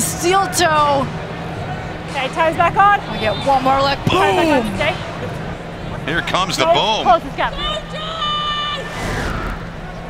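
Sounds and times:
stadium crowd noise: 0.0 - 10.0
falling whoosh: 8.8 - 10.0.

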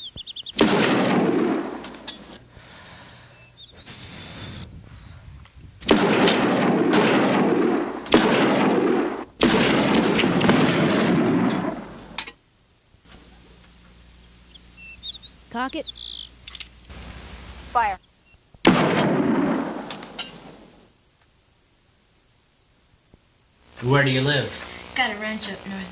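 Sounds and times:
pistol shots with echo: 0.6 - 2.2, 5.9 - 12.2, 18.6 - 20.7.

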